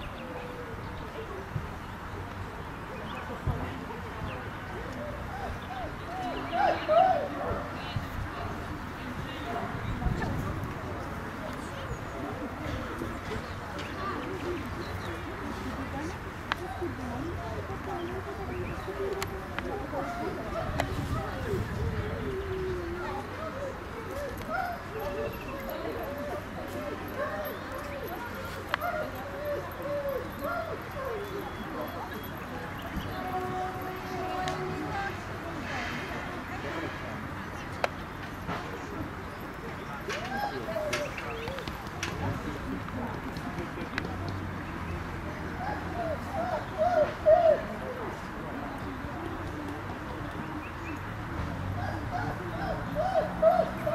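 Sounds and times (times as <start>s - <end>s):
indistinct voices talking: 0.0s - 53.9s
outdoor ambience: 0.0s - 53.9s
pigeon cooing: 45.6s - 48.0s, 51.8s - 53.9s.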